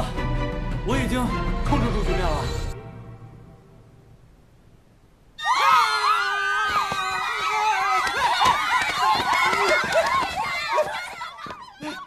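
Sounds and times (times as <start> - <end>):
young women shouting and screaming: 5.4 - 12.0.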